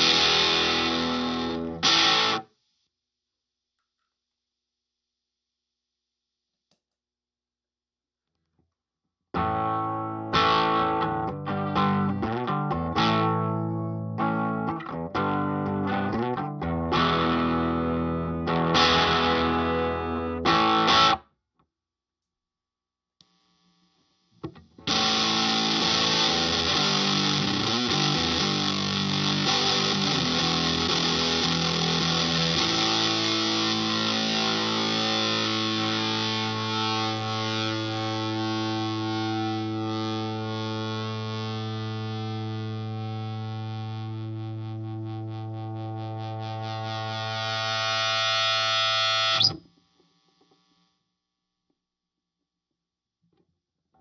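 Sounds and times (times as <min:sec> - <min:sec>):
fuzz electric guitar chords: 0:00.0 - 0:02.5, 0:09.4 - 0:21.2, 0:24.5 - 0:49.6.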